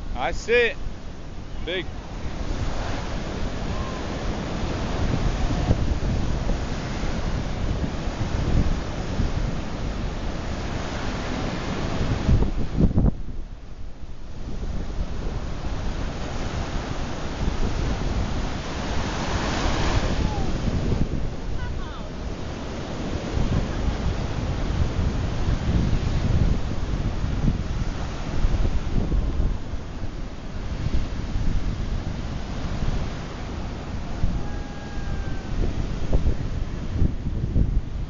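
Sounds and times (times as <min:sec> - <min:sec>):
sea surf on sandy beach: 0:00.0 - 0:38.0
wind buffeting microphone: 0:00.0 - 0:38.0.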